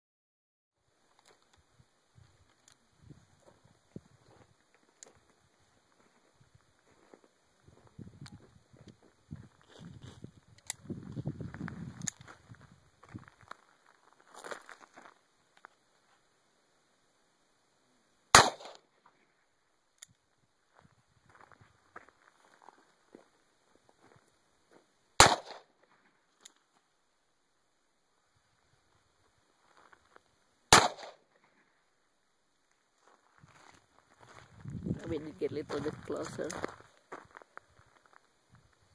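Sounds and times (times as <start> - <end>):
revolver gunshots: 18.3 - 18.8, 25.2 - 25.6, 30.7 - 31.2.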